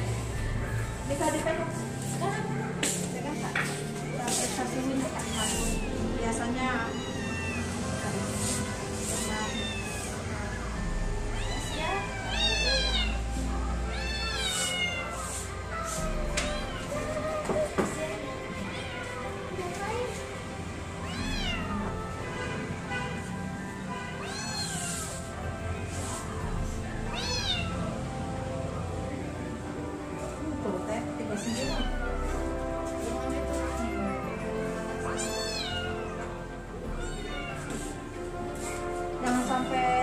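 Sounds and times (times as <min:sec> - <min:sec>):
kitten meowing: 0:05.3 - 0:06.0, 0:06.8 - 0:07.8, 0:09.1 - 0:10.2, 0:11.4 - 0:13.3, 0:13.9 - 0:15.2, 0:15.8 - 0:17.4, 0:21.0 - 0:21.9, 0:24.2 - 0:25.2, 0:27.1 - 0:27.8, 0:31.4 - 0:32.3, 0:35.2 - 0:36.2, 0:36.9 - 0:37.8.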